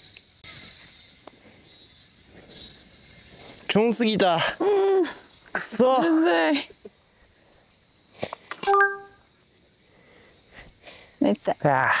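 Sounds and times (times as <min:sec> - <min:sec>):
bright electronic chime: 0:08.6 - 0:09.2.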